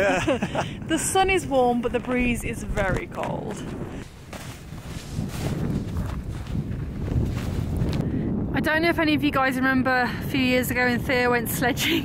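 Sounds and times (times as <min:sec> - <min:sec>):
boot footsteps crunching in snow: 0:02.0 - 0:08.0.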